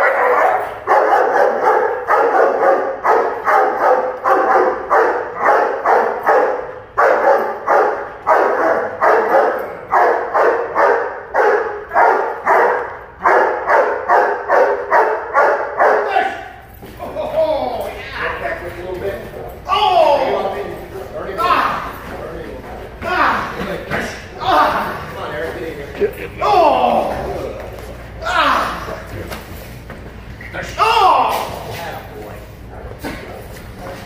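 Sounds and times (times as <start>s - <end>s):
dog barking steadily: 0.0s - 16.4s.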